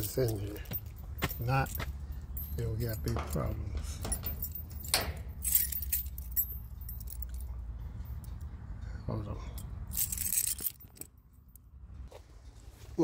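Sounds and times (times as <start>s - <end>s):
keys jangling: 0.0s - 8.5s, 9.6s - 11.6s.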